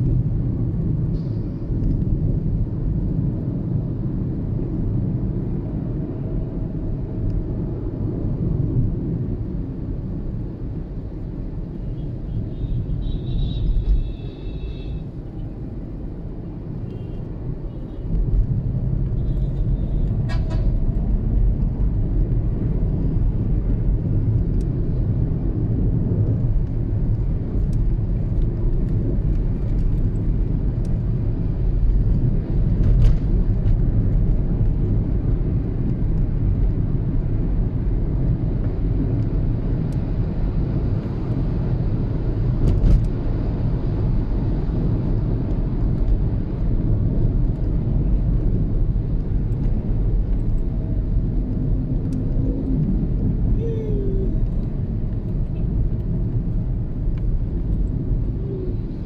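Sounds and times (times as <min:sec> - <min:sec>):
car road and engine rumble: 0:00.0 - 0:59.0.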